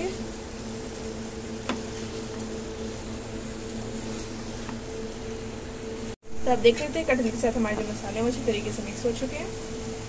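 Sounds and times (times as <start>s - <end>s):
steady motor hum: 0.0s - 10.0s.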